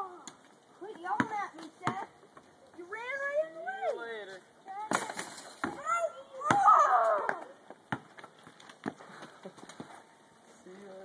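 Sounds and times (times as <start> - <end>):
basketball bouncing on concrete: 0.9 - 2.2, 4.9 - 5.8, 6.4 - 6.7, 7.3 - 9.0
child's voice: 5.8 - 7.5.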